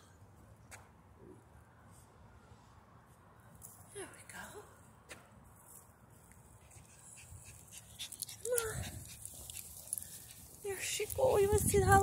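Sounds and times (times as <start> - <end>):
faint low outdoor rumble: 0.0 - 12.0.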